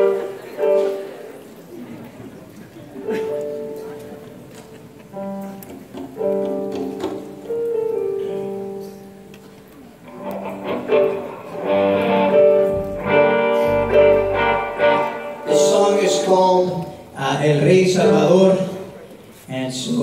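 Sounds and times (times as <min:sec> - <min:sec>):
band playing held chords: 0:10.1 - 0:18.4
bass: 0:12.8 - 0:14.9.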